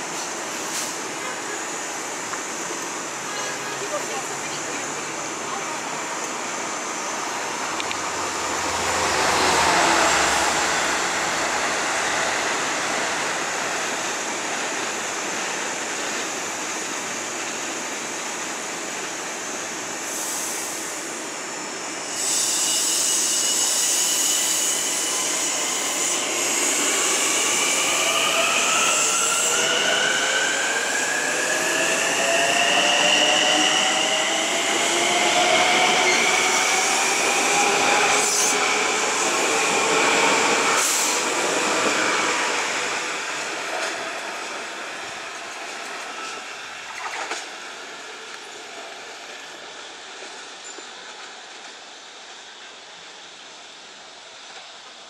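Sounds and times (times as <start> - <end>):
electric train pulling out: 0.0 - 50.8.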